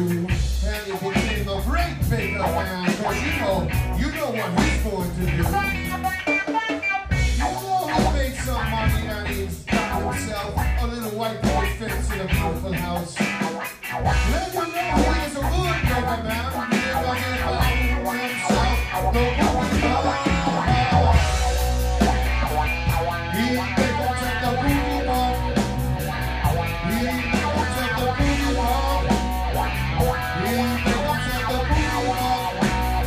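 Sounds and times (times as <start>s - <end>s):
bass guitar: 0.0s - 33.0s
drums: 0.0s - 33.0s
electric guitar picking notes: 0.0s - 33.0s.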